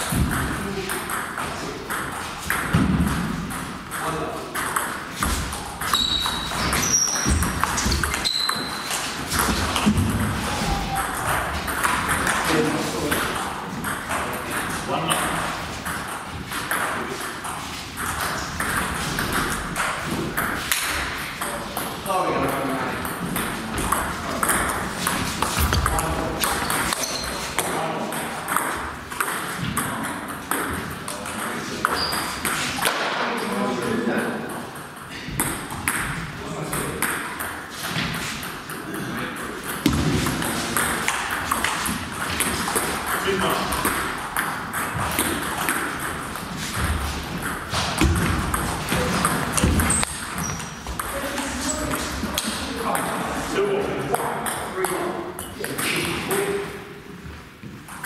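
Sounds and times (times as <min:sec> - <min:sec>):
people talking: 0:00.2 - 0:02.0, 0:03.9 - 0:04.6, 0:10.4 - 0:11.6, 0:12.2 - 0:13.5, 0:14.1 - 0:15.6, 0:21.4 - 0:24.7, 0:25.6 - 0:28.5, 0:29.8 - 0:34.6, 0:36.4 - 0:37.2, 0:43.1 - 0:44.0, 0:48.9 - 0:50.0, 0:51.0 - 0:56.8.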